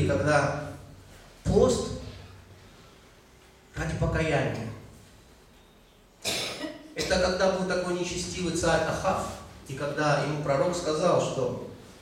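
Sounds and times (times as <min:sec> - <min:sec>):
man coughing into microphone: 0:06.2 - 0:07.5.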